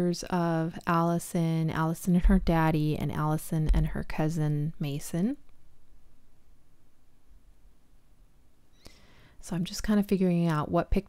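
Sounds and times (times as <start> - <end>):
faint low hum: 0.8 - 10.2.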